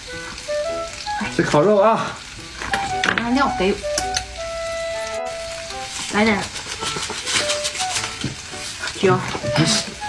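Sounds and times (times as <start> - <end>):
background music: 0.0 - 10.0
meat sizzling in a pan: 0.0 - 10.0
seasoning shaken with grainy rattle: 5.3 - 10.0.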